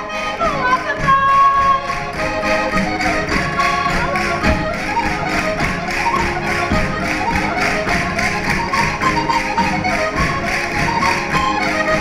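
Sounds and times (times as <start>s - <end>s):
folk melody instruments: 0.0s - 12.0s
percussive beat: 0.0s - 12.0s.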